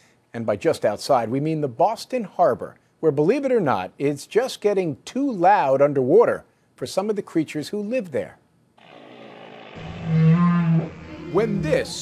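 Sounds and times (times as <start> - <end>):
low long whale call: 8.8 - 12.0.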